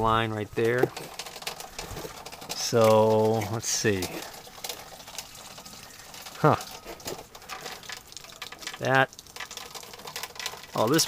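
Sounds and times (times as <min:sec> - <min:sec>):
plastic parts clicking and rustling: 0:00.6 - 0:11.0.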